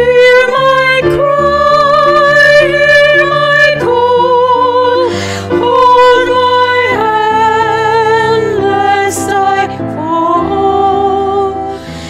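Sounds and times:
woman singing with vibrato: 0.0s - 11.7s
grand piano accompaniment: 0.0s - 12.0s.

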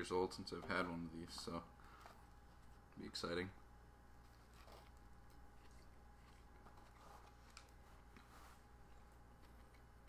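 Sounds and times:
low steady hum: 0.0s - 10.0s
faint chewing: 4.2s - 10.0s.

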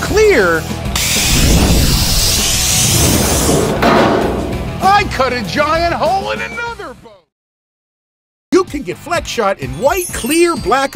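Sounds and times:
background music: 0.0s - 7.2s, 8.6s - 10.9s
plasma cutter hissing: 1.0s - 3.6s
metal piece crashing: 1.2s - 5.0s.

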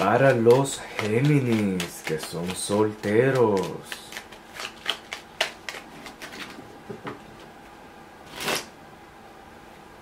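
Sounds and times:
playing cards rustling: 0.0s - 6.7s.

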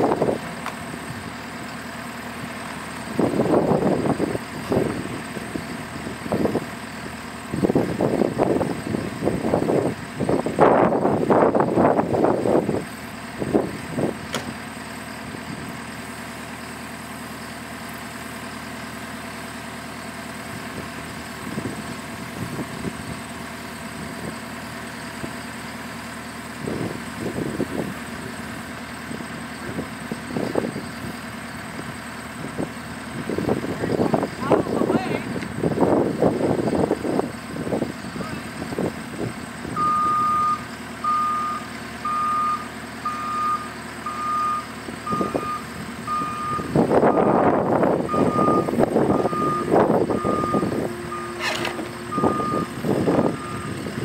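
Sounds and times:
loader engine running: 0.0s - 54.0s.

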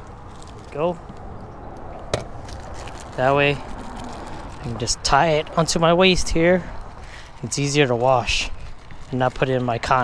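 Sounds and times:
plastic bag handled: 0.0s - 10.0s.

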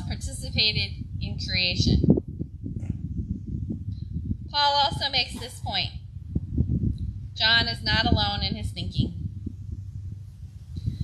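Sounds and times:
wind buffeting a microphone: 0.0s - 11.0s.

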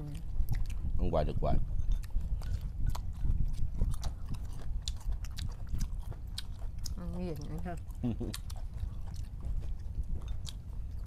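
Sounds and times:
chewing: 0.0s - 1.0s, 1.7s - 11.0s
steady low rumble: 0.0s - 11.0s.

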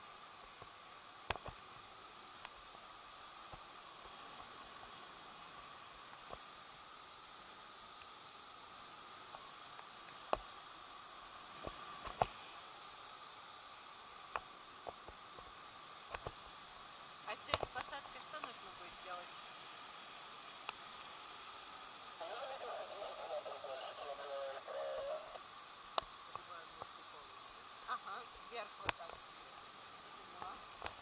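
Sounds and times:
faint steady hiss: 0.0s - 31.0s
muffled voice: 22.2s - 25.4s.

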